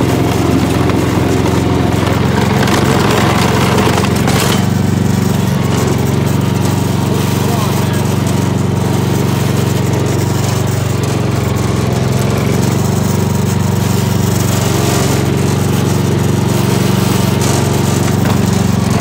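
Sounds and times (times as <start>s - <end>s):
garden tractor engine running: 0.0s - 19.0s
plow blade pushing snow: 0.0s - 19.0s.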